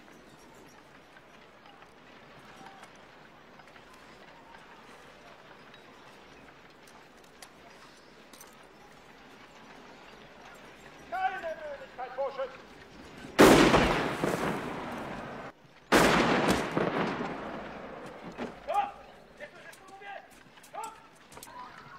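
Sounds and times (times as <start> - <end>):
faint outdoor background: 0.0 - 21.9
small clicks: 0.3 - 11.6, 19.4 - 21.9.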